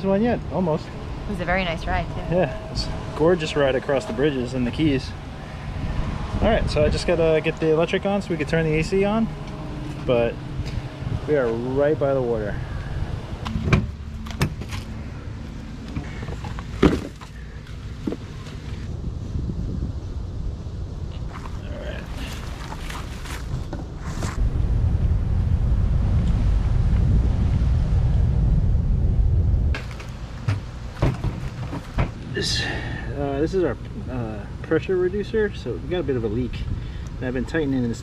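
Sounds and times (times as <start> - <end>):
steady low rumble: 0.0 - 38.0.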